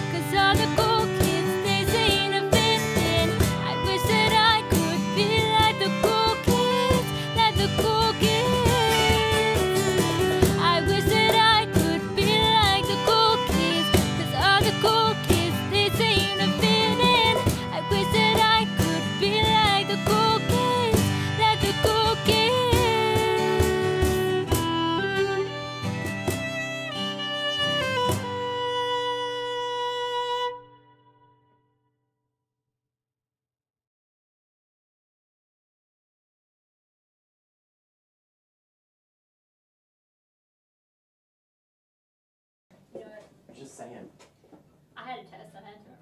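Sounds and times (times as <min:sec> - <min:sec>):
acoustic guitar strumming: 0:00.0 - 0:31.4
violin lead with vibrato: 0:00.0 - 0:31.5.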